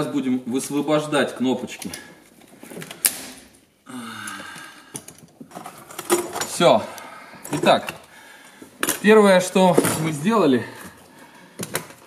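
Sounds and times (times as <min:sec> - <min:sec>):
rustling of plastic and wires: 0:01.8 - 0:03.4, 0:04.4 - 0:12.0
sharp plastic snap: 0:03.0 - 0:03.4.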